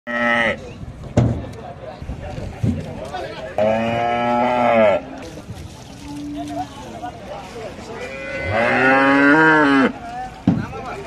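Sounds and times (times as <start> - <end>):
cow mooing: 0.1 - 0.6, 3.6 - 5.2, 8.0 - 10.0.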